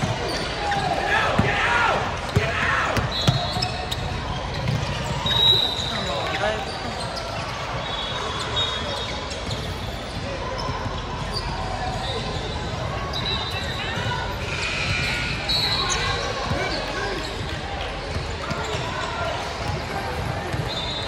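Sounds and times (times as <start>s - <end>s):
chatter of players and spectators: 0.0s - 21.0s
sneakers squeaking on hardwood: 2.3s - 17.6s.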